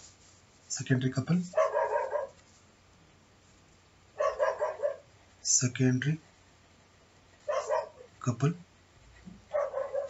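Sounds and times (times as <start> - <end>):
dog barking: 1.5 - 2.4, 4.2 - 5.1, 7.4 - 8.1, 9.5 - 10.0.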